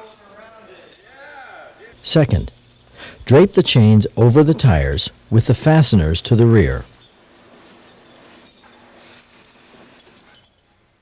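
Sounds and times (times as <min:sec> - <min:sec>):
tire chains clinking: 0:00.0 - 0:11.0.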